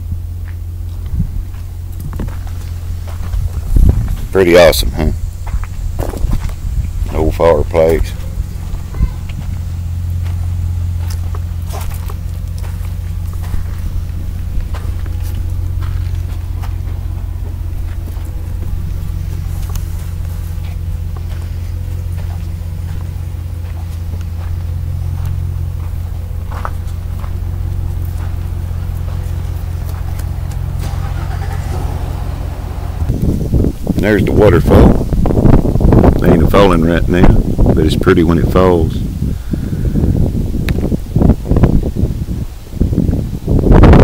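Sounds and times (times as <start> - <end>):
low motor hum: 0.0 - 44.0.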